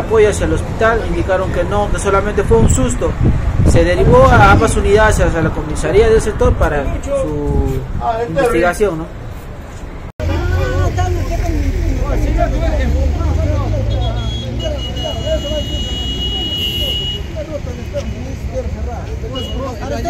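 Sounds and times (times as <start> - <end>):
vehicle engine rumbling: 0.0 - 20.0
people talking: 3.8 - 9.1, 10.2 - 20.0.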